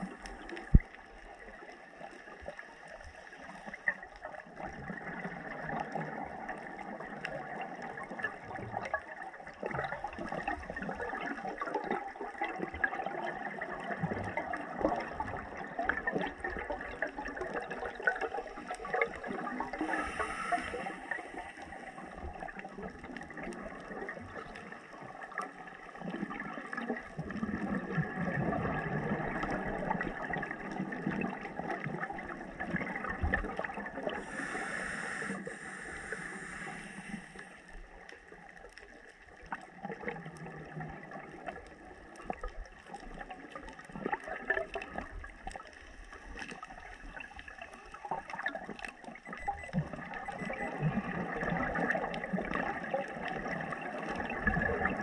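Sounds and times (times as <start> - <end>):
crackling underwater water noise: 0.0 - 55.0
short hisses: 19.9 - 21.2, 34.3 - 37.5
low bubbling: 48.0 - 55.0.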